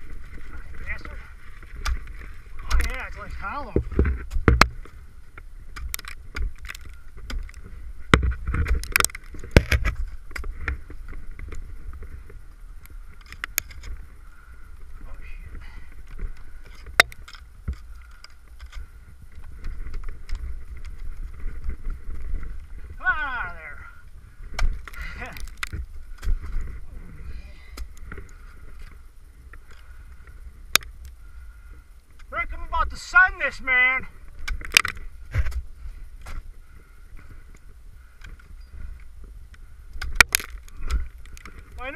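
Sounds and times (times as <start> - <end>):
steady low rumble: 0.0 - 41.9
person speaking: 23.0 - 24.0, 32.3 - 34.2
ice axe striking ice: 40.0 - 41.9.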